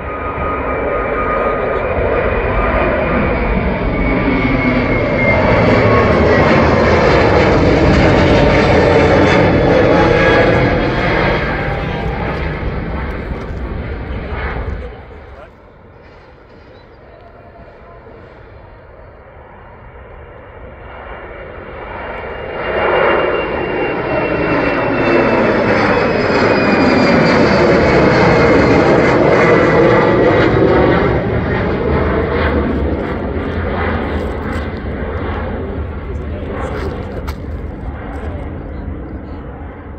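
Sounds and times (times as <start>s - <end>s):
falling turbofan whine: 0.0s - 39.9s
jet airliners taking off: 0.0s - 39.9s.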